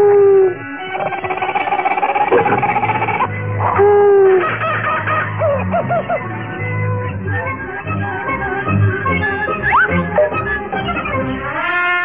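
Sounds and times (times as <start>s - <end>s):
cartoon owl hooting: 0.0s - 4.5s
background music: 0.0s - 12.0s.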